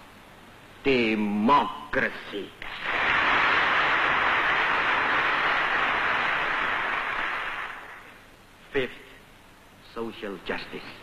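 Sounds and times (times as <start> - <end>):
audience applauding: 2.6 - 8.2.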